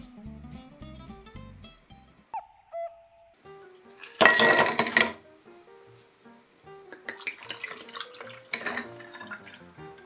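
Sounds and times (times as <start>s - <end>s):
soft guitar music: 0.0s - 4.2s, 5.2s - 10.0s
falling whistle sound effect: 2.4s - 3.4s.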